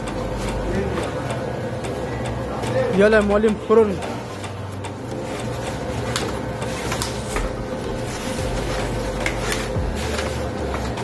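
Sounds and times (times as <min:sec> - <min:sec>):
mechanical whirring hum: 0:00.0 - 0:11.0.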